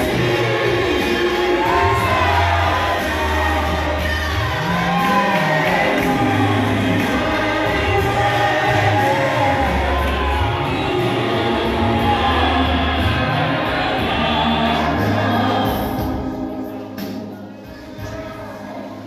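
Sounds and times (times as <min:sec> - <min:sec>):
loud bass line: 0:00.0 - 0:16.5
group singing gospel song: 0:00.0 - 0:17.3.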